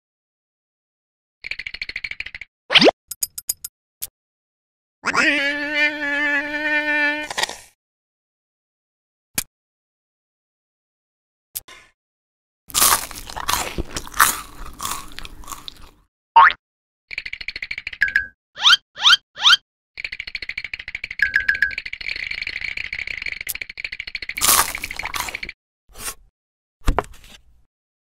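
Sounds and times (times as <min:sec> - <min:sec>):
crunching and chewing: 0:12.7 - 0:16.0, 0:24.3 - 0:25.6.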